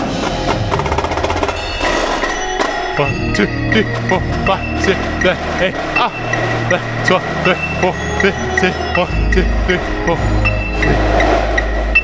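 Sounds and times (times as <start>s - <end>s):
tenor drums fast rhythm: 0.0s - 12.0s
sustained low bass notes: 2.8s - 12.0s.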